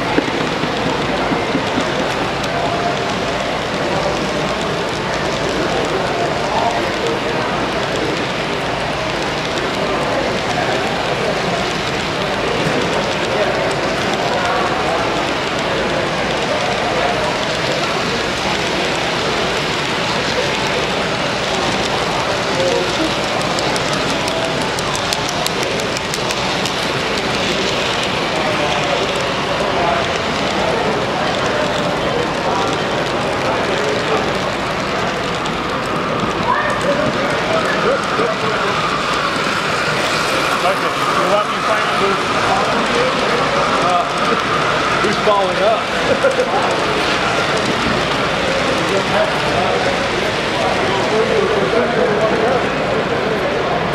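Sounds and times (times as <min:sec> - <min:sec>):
crowd chatter in a hall: 0:00.0 - 0:53.9
model train wheels clattering: 0:00.0 - 0:53.9.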